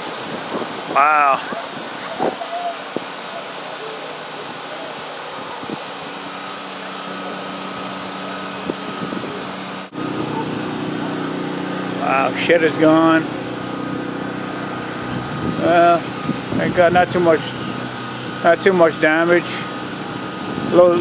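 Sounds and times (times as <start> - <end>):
low engine-like hum: 0.0 - 21.0.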